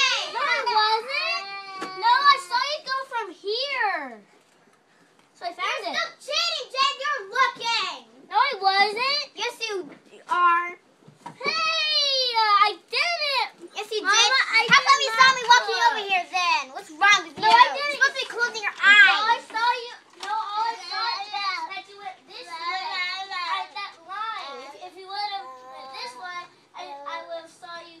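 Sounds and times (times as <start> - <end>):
children talking and calling out: 0.0 - 4.3, 5.4 - 28.0.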